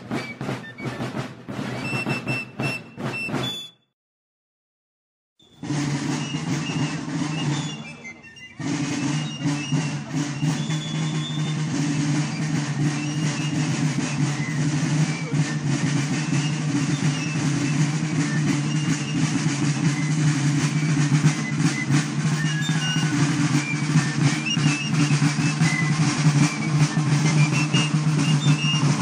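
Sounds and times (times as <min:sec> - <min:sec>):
snare drums marching beat: 0:00.0 - 0:03.7, 0:05.6 - 0:29.0.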